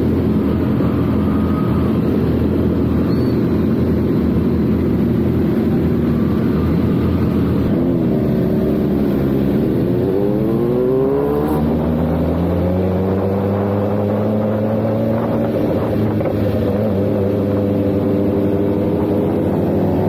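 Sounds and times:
motorcycle engine revving: 4.8s - 20.0s.

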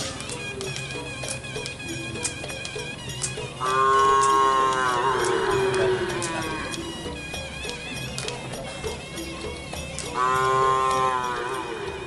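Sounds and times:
bull mooing: 3.6s - 6.9s, 10.2s - 12.0s.

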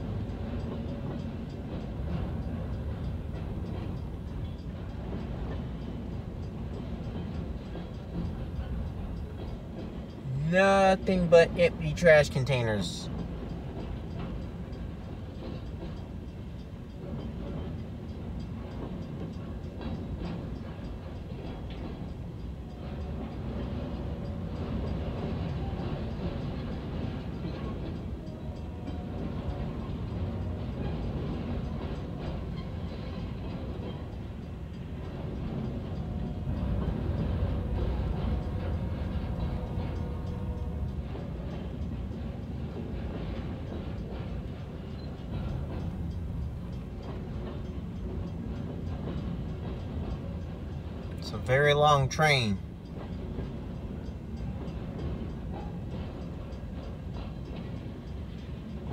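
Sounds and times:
train wheels rumbling on rail: 0.0s - 58.9s.

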